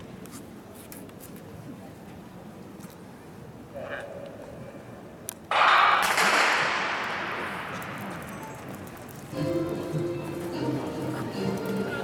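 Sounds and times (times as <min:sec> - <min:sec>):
starting pistol crack: 0:05.5 - 0:09.2.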